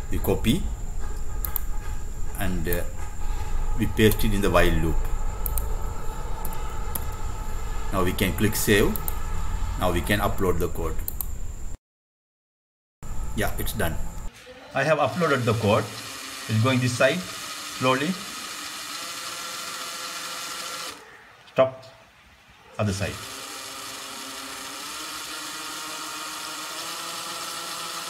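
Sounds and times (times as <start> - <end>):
small motors whirring with whine: 0.8 - 11.8, 13.1 - 21.0, 23.2 - 28.0
low rumble: 2.2 - 11.8.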